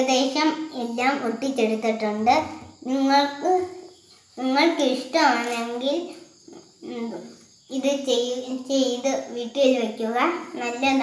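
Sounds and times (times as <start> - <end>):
child talking: 0.0 - 11.0.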